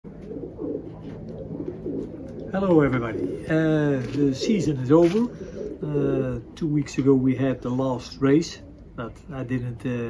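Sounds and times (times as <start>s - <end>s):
pigeons cooing: 0.1s - 10.0s.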